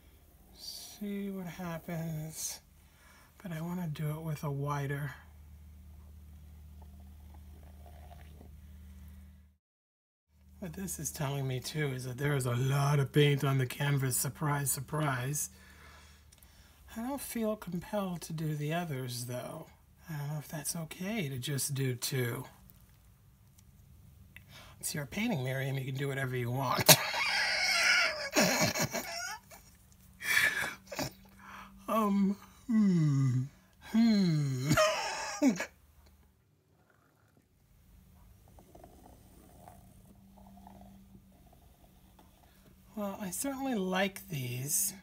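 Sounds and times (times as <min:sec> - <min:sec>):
low room hum: 0:00.0 - 0:09.6, 0:10.4 - 0:45.0
woman laughing: 0:26.9 - 0:29.7, 0:34.7 - 0:35.7.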